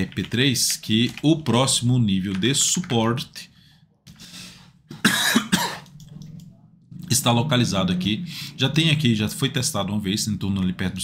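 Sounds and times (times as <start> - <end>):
faint breath: 3.5 - 4.8
man coughing: 4.9 - 5.9.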